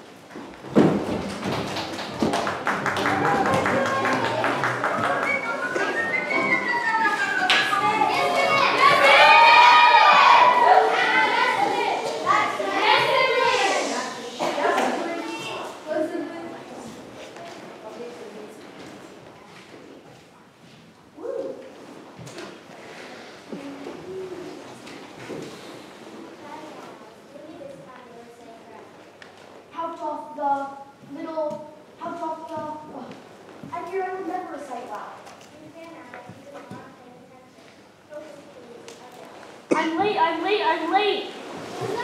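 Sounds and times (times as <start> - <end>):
faint voices: 2.1 - 20.6, 22.6 - 25.0
background music: 2.5 - 8.3
audience member hooting ooh: 2.7 - 8.2
children chattering and calling out: 3.0 - 19.7, 22.6 - 25.0, 26.1 - 42.0.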